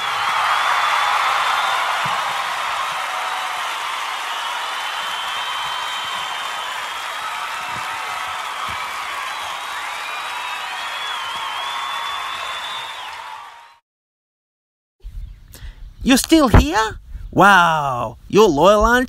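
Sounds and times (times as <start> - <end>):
crowd applauding and cheering: 0.0 - 13.8.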